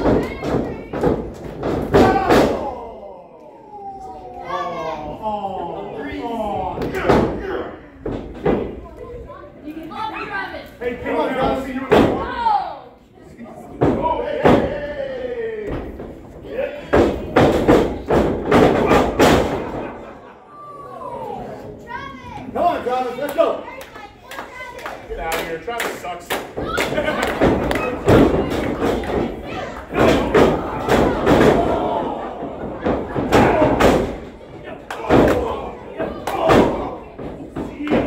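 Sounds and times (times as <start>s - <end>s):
people shouting: 1.8s - 6.4s, 18.6s - 19.5s, 26.6s - 38.0s.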